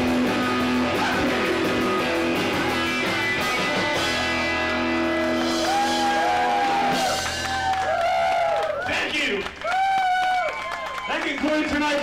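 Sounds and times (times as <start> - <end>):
rock band holding a chord: 0.0 - 7.7.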